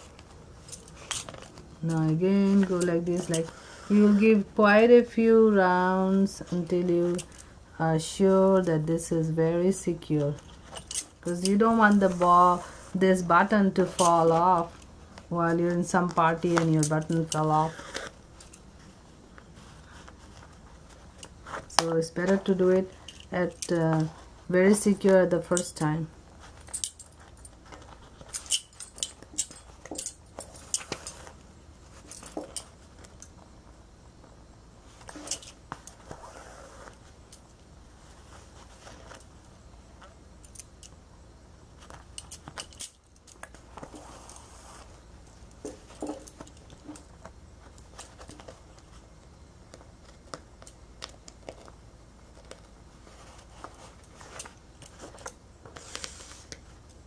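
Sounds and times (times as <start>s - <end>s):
bangles clinking: 26.5s - 31.3s.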